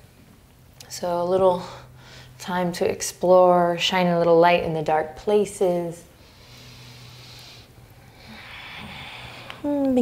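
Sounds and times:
person breathing slowly: 0:06.2 - 0:09.7.

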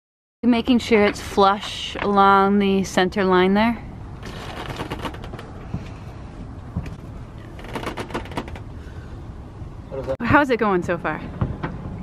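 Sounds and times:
low wind rumble: 0:00.5 - 0:12.0.

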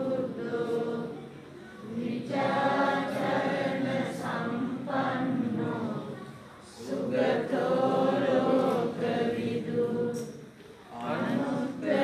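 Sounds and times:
group chanting in unison: 0:00.0 - 0:12.0.

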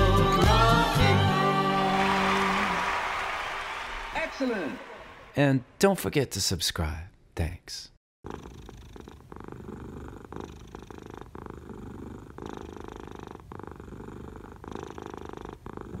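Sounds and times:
cat purring: 0:08.2 - 0:16.0.

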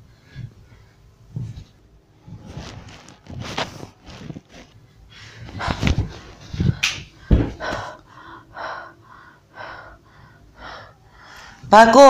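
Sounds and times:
woman gasping and breathing hard: 0:05.2 - 0:11.6.

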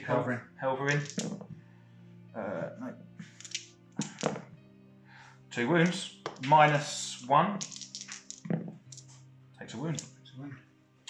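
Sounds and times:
background music: 0:00.0 - 0:11.0
dice landing on cloth mat: 0:00.9 - 0:01.5, 0:03.3 - 0:04.5, 0:05.9 - 0:06.5, 0:07.6 - 0:09.1.

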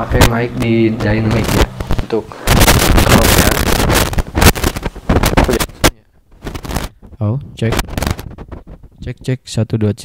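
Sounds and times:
microphone handling rumble: 0:00.0 - 0:09.3
microphone knocks and clicks: 0:00.0 - 0:09.3.

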